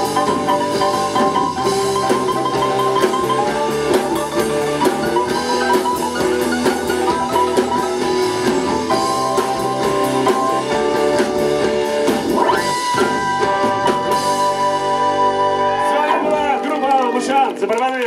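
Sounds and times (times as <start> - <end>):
drum kit: 0.0 - 16.4
bass guitar: 0.0 - 17.6
electric guitar: 0.0 - 17.6.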